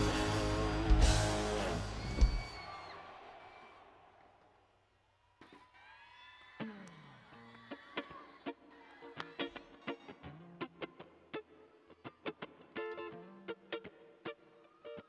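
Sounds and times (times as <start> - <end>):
electric guitar chord ringing: 0.0 - 2.0
faint whoops: 1.9 - 3.9.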